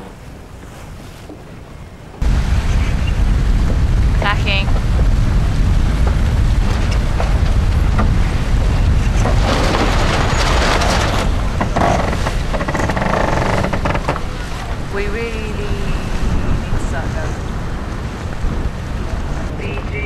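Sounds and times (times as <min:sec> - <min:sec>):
water rushing along hull: 0:00.0 - 0:20.0
wind buffeting microphone: 0:00.0 - 0:20.0.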